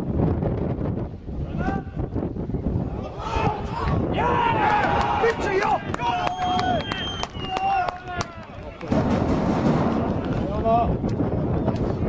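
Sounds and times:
wind buffeting microphone: 0.0 - 12.0
men shouting in celebration: 3.1 - 7.0
hands clapping: 4.9 - 8.9.

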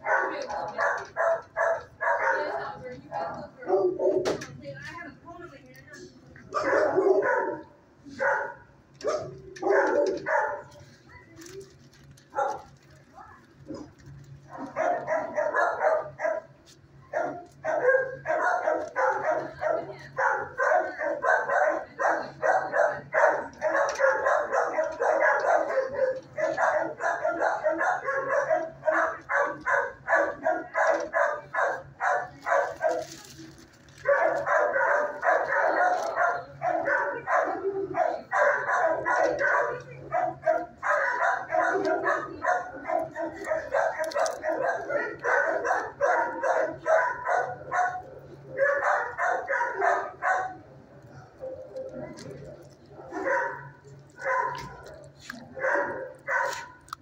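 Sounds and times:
dogs barking: 0.0 - 4.4, 6.4 - 11.4, 12.3 - 12.8, 13.6 - 57.0.

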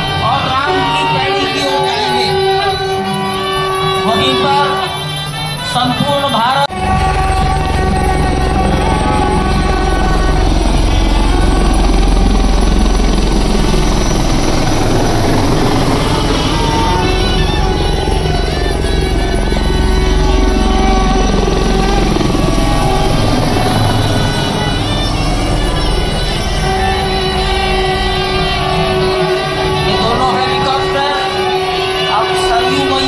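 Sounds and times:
helicopter rotor and engine: 0.0 - 33.0
music playing: 0.0 - 33.0.

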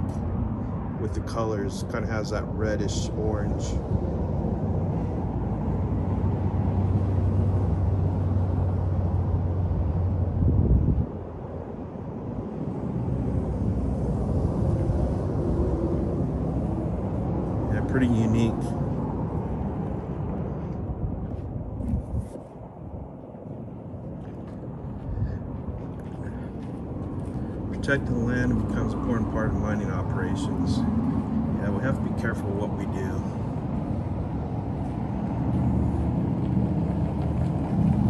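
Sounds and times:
motor vehicle rumble: 0.0 - 38.0.

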